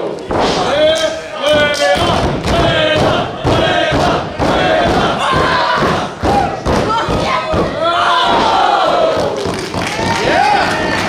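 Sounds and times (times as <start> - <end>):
wrestlers and crowd shouting: 0.0 - 11.0.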